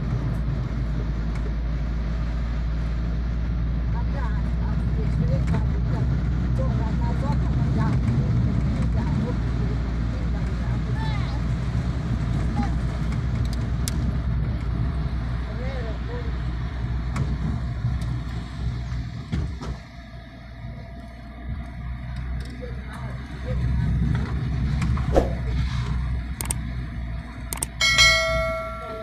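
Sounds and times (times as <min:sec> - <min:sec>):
car engine and road noise: 0:00.0 - 0:29.0.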